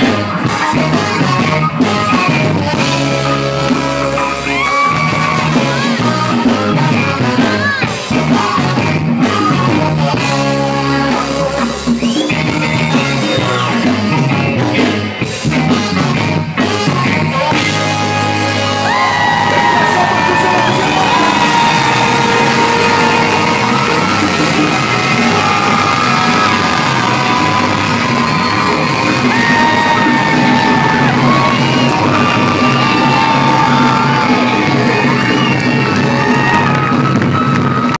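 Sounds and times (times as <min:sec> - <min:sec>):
live soul band playing: 0:00.0 - 0:38.0
sliding sustained lead notes: 0:19.4 - 0:36.6.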